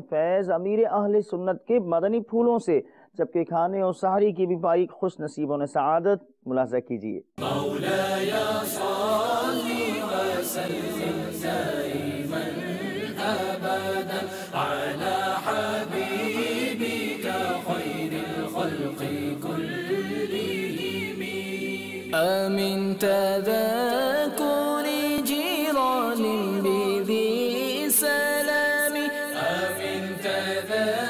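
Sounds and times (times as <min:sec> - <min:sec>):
voices chanting a slow melody: 0:07.4 - 0:22.5, 0:23.1 - 0:31.0.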